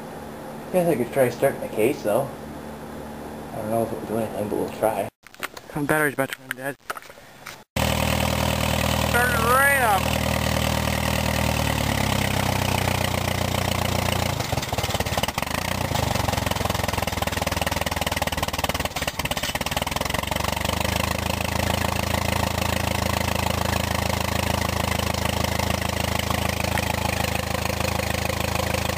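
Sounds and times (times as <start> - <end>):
tractor engine idling: 7.8 - 28.9.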